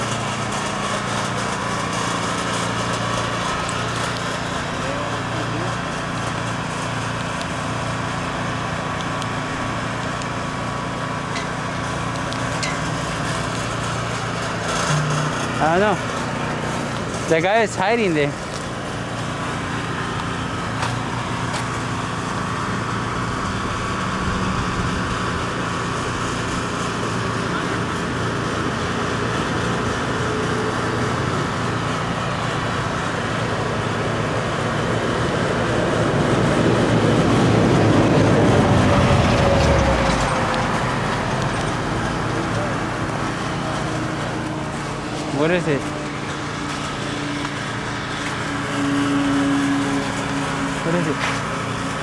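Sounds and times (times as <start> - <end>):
traffic hum: 0.0 - 52.0
vehicle passing: 34.8 - 52.0.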